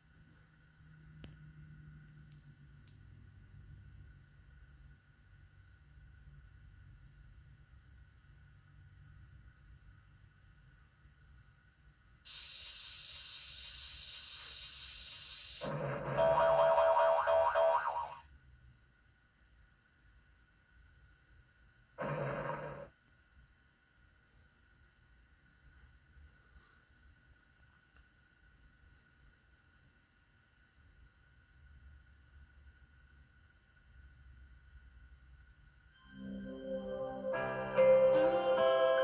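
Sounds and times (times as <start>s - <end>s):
electronic jingle through tv speaker: 12.3s - 18.2s, 35.9s - 39.0s.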